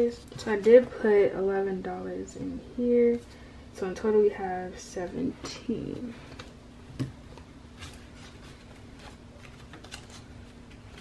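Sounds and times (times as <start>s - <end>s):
paper bills rustling: 7.8s - 11.0s.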